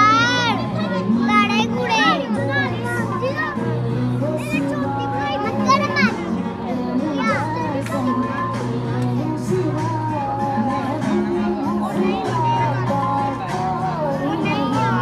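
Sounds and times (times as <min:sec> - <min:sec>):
background music: 0:00.0 - 0:15.0
children calling and chattering: 0:00.0 - 0:15.0.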